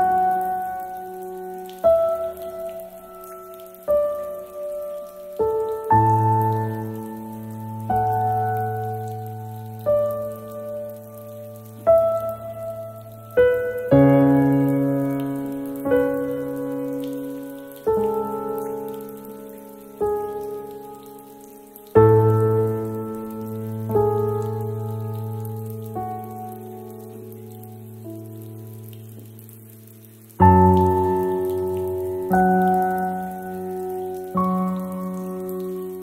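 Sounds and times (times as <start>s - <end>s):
slow piano chords: 0.0s - 36.0s
soft water sound: 0.0s - 36.0s.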